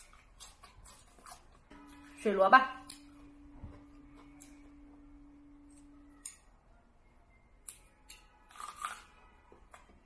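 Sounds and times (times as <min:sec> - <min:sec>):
crunching radish bite: 0:00.0 - 0:01.6, 0:07.6 - 0:09.9.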